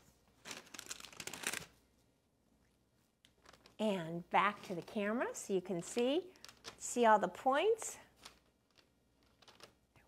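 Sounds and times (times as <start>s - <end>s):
parchment paper rustling: 0.0s - 1.9s, 3.2s - 6.9s, 8.0s - 9.8s.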